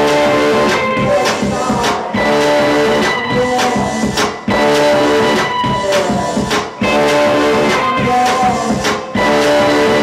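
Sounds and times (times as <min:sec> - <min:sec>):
electric guitar: 0:00.0 - 0:10.0
live rock band playing: 0:00.0 - 0:10.0.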